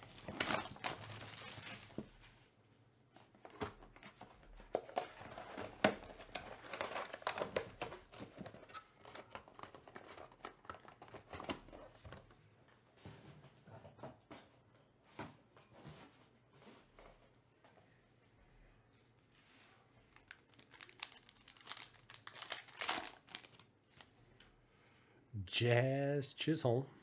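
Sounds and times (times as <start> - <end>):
plastic wrap crinkling and tearing: 0.0 - 2.2, 4.8 - 11.8, 20.1 - 24.1.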